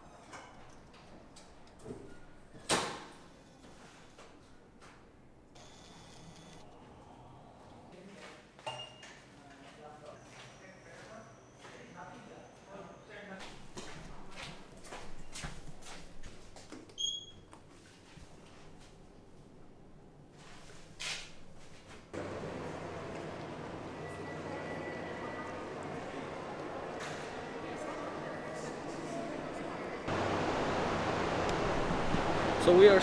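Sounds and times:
steady outdoor rushing noise: 0:22.2 - 0:33.0.

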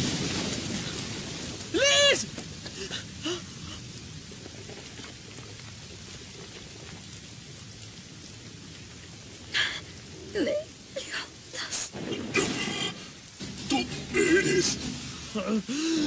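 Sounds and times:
heavy rain hiss: 0:00.0 - 0:16.0.

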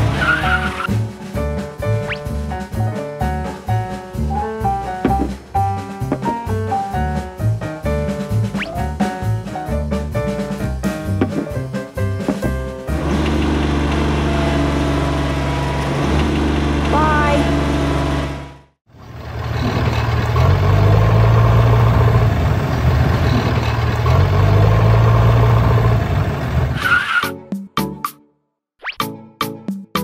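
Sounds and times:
tractor engine running: 0:04.1 - 0:09.6, 0:10.2 - 0:26.8.

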